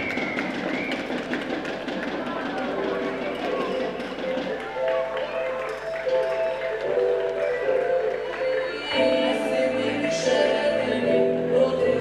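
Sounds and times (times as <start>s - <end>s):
sports ground crowd noise: 0.0s - 9.2s
music with held notes: 2.7s - 12.0s.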